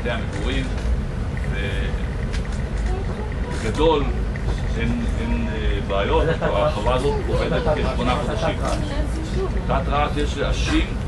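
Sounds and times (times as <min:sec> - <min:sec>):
low rumble of room noise: 0:00.0 - 0:11.0.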